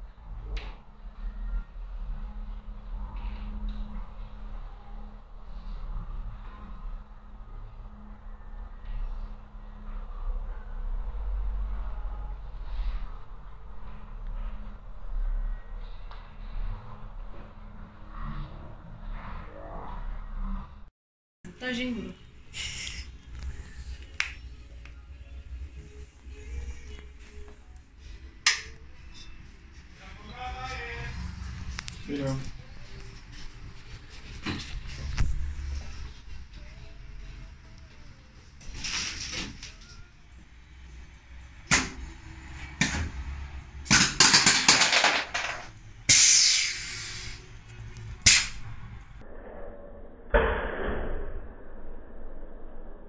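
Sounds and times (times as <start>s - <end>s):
low rumble: 23.0s - 38.6s, 47.2s - 53.0s
pneumatic cutter snaps: 46.1s - 47.1s, 48.2s - 48.6s
hiss of released air: 46.1s - 47.5s.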